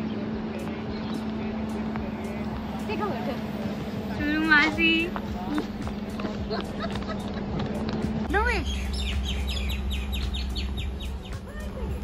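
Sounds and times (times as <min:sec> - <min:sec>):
steady low hum: 0:00.0 - 0:12.0
songbird calling descending notes: 0:08.6 - 0:12.0.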